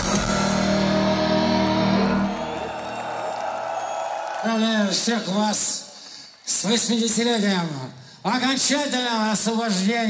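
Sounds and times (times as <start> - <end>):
electric guitars holding a chord: 0.0 - 2.6.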